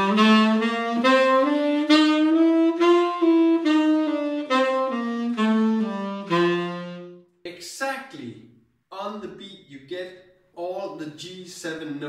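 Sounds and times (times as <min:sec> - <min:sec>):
tenor saxophone playing scale: 0:00.0 - 0:07.4.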